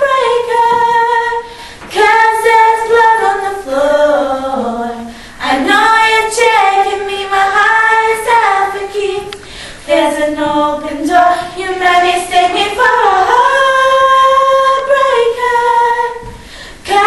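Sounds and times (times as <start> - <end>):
girls singing without accompaniment: 0.0 - 17.0.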